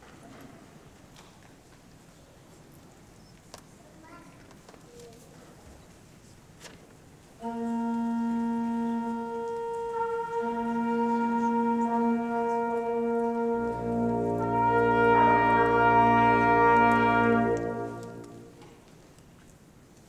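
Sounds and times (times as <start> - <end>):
brass quintet playing chords: 7.4 - 18.6.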